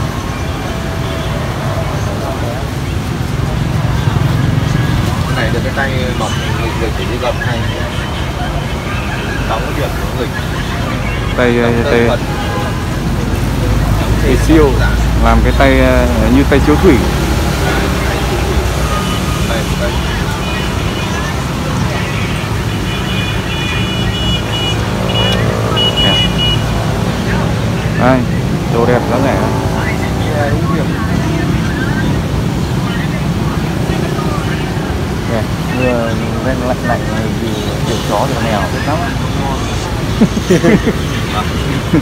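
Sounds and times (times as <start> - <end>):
people talking: 0.0 - 42.0
traffic rumble on wet street: 0.0 - 42.0
high steady tone: 16.1 - 32.6.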